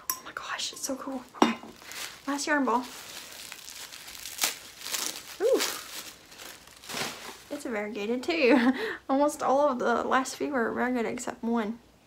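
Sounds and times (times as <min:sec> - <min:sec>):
wrapping paper crinkling and tearing: 0:01.0 - 0:08.0.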